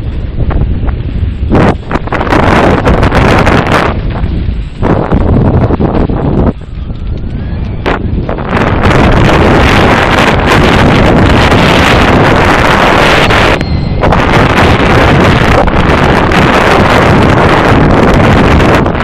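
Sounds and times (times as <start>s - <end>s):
mountain bike rattling: 0.0s - 19.0s
wind buffeting microphone: 0.0s - 19.0s.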